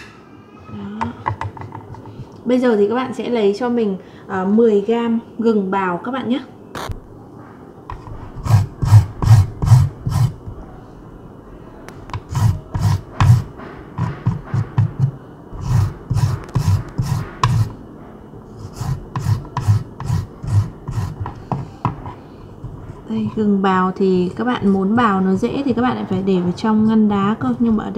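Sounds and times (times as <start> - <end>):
ginger rasping on a grater: 8.3 - 10.4, 12.1 - 15.0, 15.6 - 17.7, 18.6 - 21.4.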